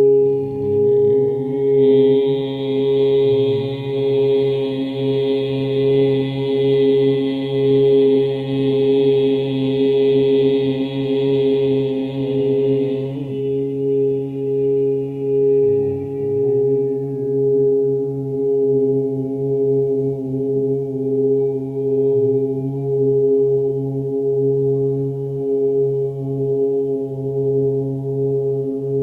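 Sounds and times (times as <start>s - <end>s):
high chant-like drone: 0.0s - 29.0s.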